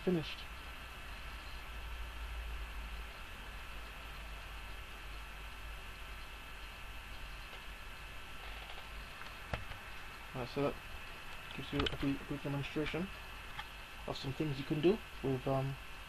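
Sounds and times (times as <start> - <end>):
faint high-pitched whine: 0.0 - 16.0
steady hiss and low hum: 0.0 - 16.0.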